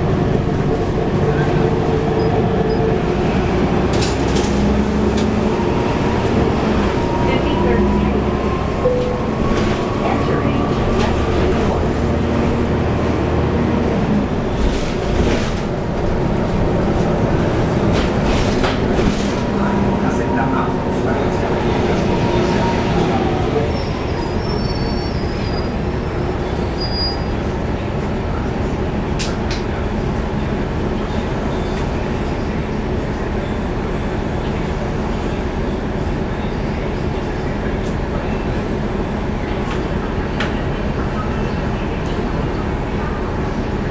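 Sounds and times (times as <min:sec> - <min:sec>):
bus diesel engine running: 0:00.0 - 0:43.9.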